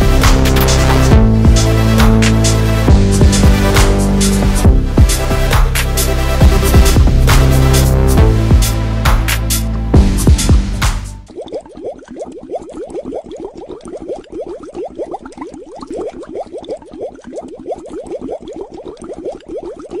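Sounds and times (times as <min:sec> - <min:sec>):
loud electronic dance music: 0:00.0 - 0:11.1
rising bubbly blips: 0:11.2 - 0:20.0.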